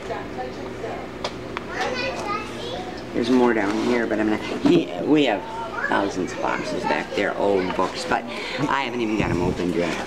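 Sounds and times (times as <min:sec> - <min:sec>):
children's voices: 0:01.6 - 0:03.1, 0:05.4 - 0:08.8.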